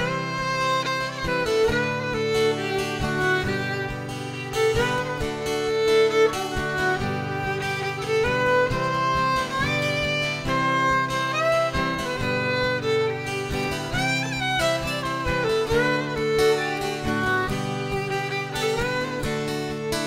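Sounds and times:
acoustic guitar strumming: 0.0 - 20.0
fiddle sliding melody: 0.0 - 20.0.

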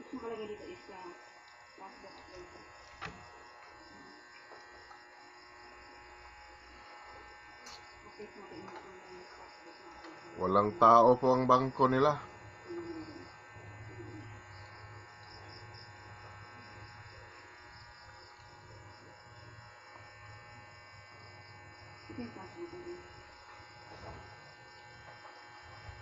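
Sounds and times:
low electrical hum: 0.0 - 26.0
pulsing high buzz: 0.0 - 26.0.

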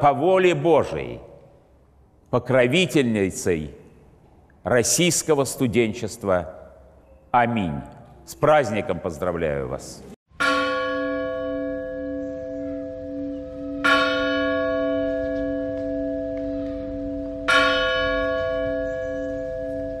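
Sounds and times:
large church bell ringing: 10.3 - 20.0.

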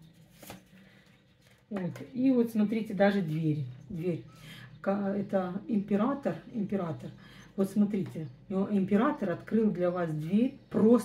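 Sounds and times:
cards rustling in hands: 0.0 - 1.7.

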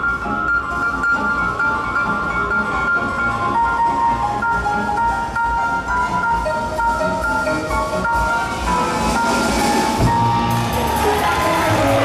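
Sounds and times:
piano: 0.0 - 12.0
drums: 4.2 - 12.0.

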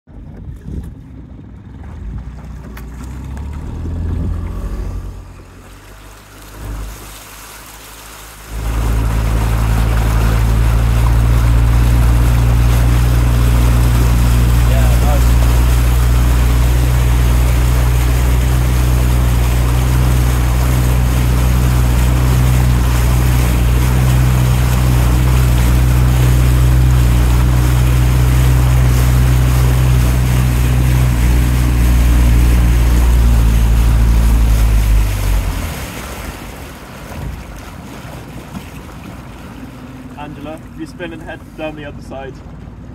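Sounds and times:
wind: 0.0 - 42.9
outboard motor running: 0.1 - 42.9
water noise: 0.1 - 42.9.

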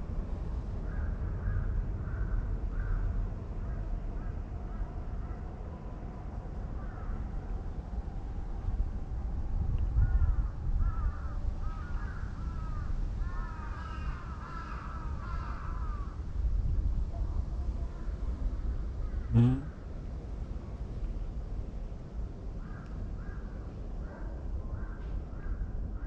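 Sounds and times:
crows cawing: 10.0 - 16.2.

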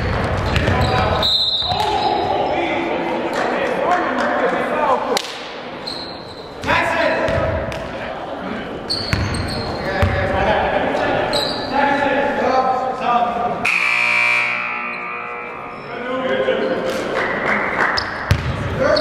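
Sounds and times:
basketball bouncing on hardwood floor: 0.0 - 1.1, 18.3 - 18.6
voices echoing in gymnasium: 0.0 - 19.0.

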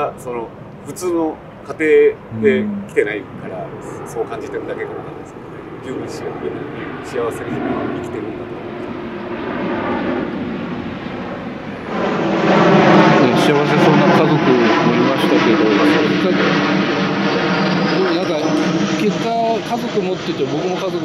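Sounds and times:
airplane flying overhead: 0.0 - 21.0.

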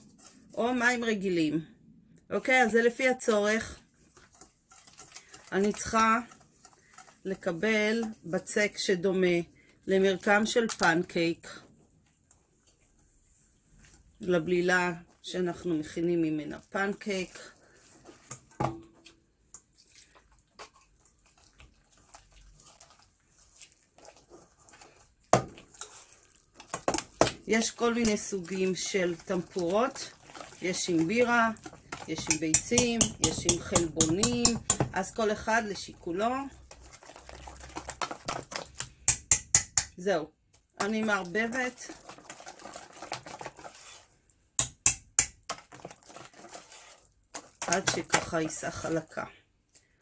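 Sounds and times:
whisk beating batter in metal bowl: 3.7 - 8.7, 20.2 - 39.8, 40.8 - 49.1
whisk clicking in metal bowl: 26.6 - 35.2, 36.7 - 40.0, 44.6 - 46.7, 47.3 - 48.9.

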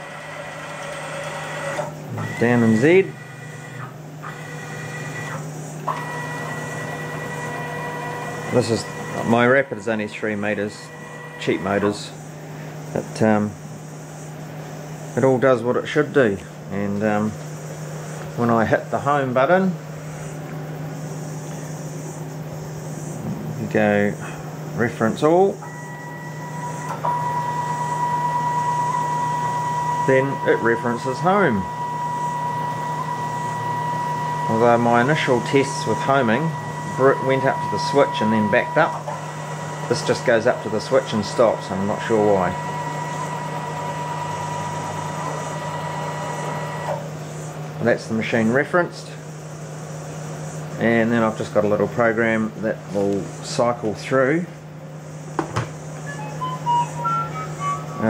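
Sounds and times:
stepper motors whining: 0.0 - 20.4, 21.0 - 54.4, 55.1 - 58.0
steady low hum: 0.0 - 58.0.

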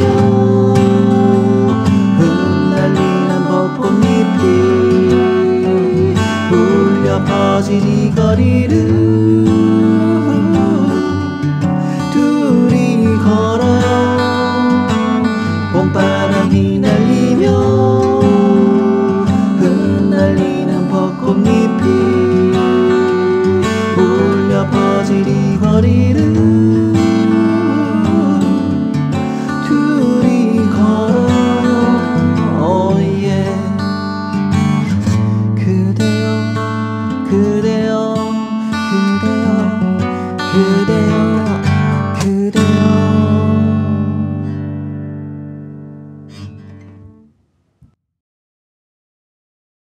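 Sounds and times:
acoustic guitar strummed: 0.0 - 47.4.

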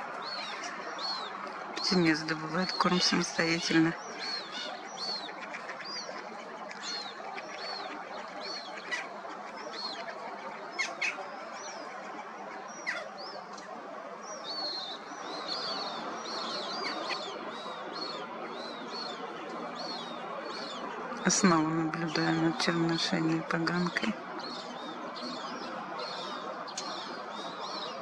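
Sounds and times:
grebe chicks begging peeps: 0.0 - 13.7
steady background noise: 0.0 - 28.0.

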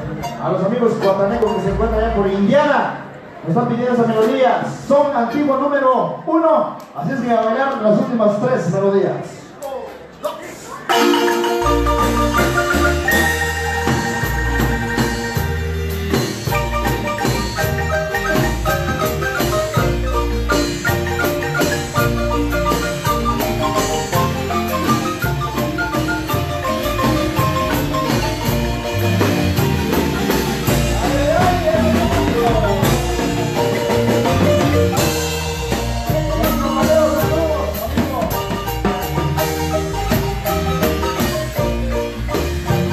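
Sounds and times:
marimba dance music: 0.0 - 4.0, 10.7 - 42.9
deep held bass notes: 11.7 - 42.9.

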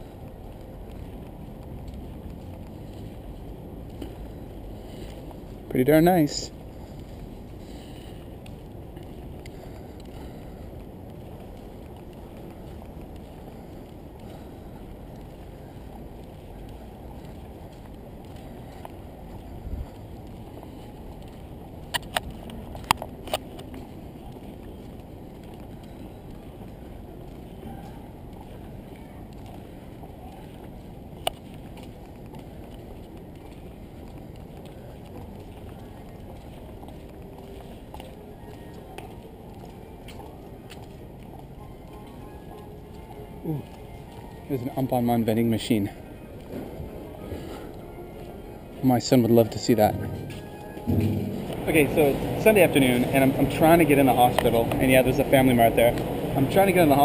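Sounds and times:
outdoor background noise: 0.0 - 57.0.

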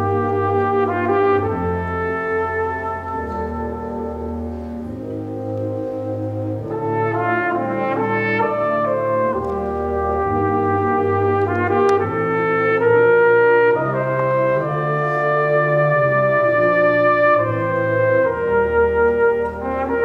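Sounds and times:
solo horn melody: 0.0 - 20.0
wind band sustained chords: 0.0 - 20.0.

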